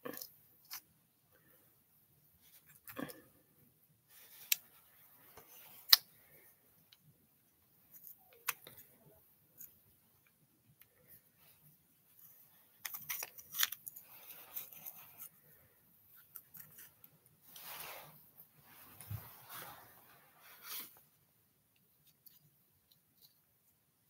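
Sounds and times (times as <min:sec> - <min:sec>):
soft rustling of handling: 0:00.1 - 0:24.0.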